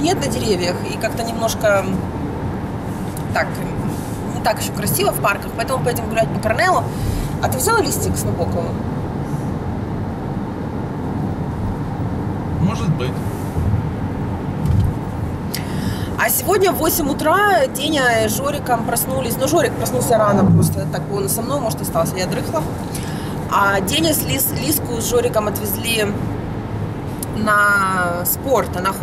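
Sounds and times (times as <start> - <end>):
car road and engine rumble: 0.0 - 29.0.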